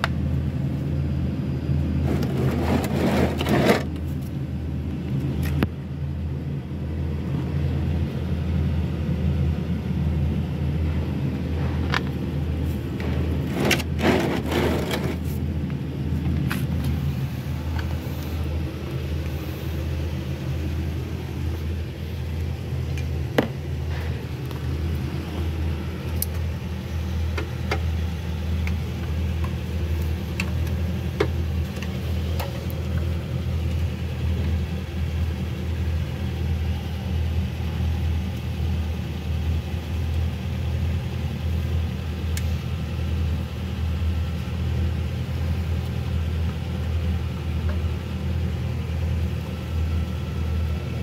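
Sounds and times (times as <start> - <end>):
engine humming: 0.0 - 51.0.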